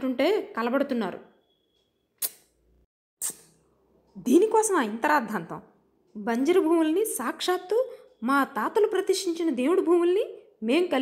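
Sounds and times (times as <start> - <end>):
woman narrating: 0.0 - 1.2, 4.1 - 11.0.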